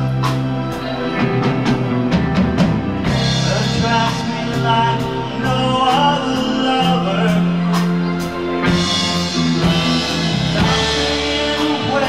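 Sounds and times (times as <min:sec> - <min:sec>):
bass guitar: 0:00.0 - 0:12.0
drum kit: 0:00.0 - 0:12.0
electric guitar: 0:00.0 - 0:12.0
keyboard: 0:00.0 - 0:12.0.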